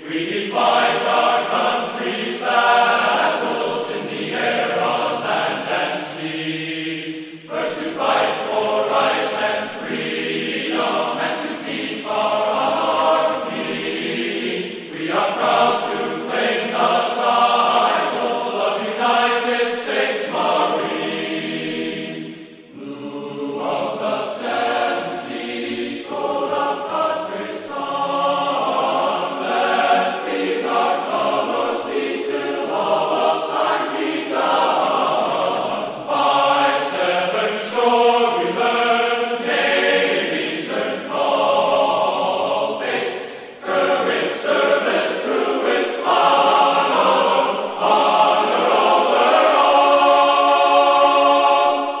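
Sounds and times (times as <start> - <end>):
choir singing sustained chords: 0.0 - 52.0.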